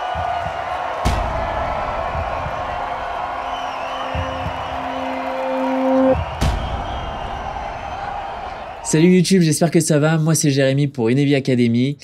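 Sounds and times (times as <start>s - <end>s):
heavy hit: 0.0s - 8.8s.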